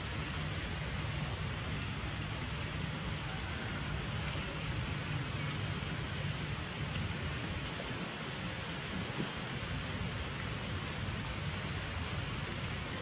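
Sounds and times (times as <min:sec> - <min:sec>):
even outdoor hiss: 0:00.0 - 0:13.0.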